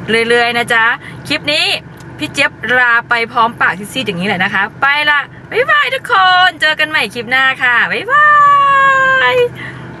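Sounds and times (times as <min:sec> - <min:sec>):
low hum inside car: 0:00.0 - 0:10.0
woman saying bye-bye: 0:02.7 - 0:09.6.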